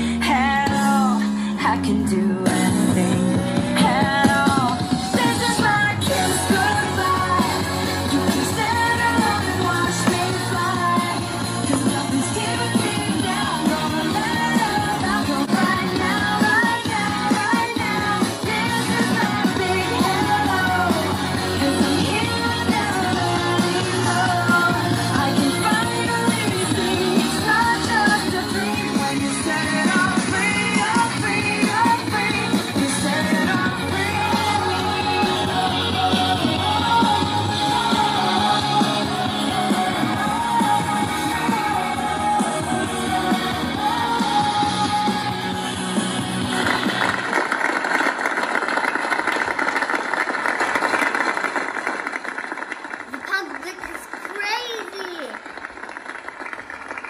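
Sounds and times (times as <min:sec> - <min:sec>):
pop song with female vocal: 0:00.0 - 0:47.1.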